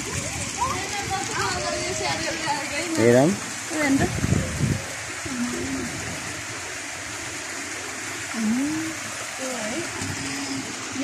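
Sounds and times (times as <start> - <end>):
water flowing and spilling: 0.0 - 11.0.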